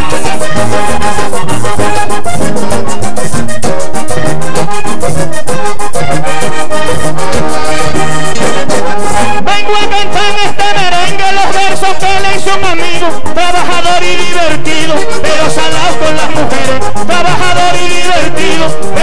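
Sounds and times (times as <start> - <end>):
button accordion melody: 0.0 - 19.0
hand percussion beat: 0.0 - 19.0
low bass line: 0.0 - 19.0.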